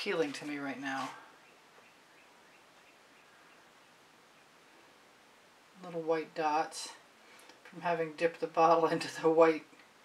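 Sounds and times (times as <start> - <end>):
faint room hiss: 0.0 - 10.0
distant bird chirps: 1.4 - 4.6.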